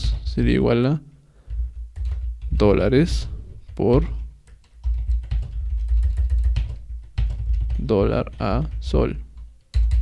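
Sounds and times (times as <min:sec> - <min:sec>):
computer keyboard typing: 0:01.5 - 0:10.0.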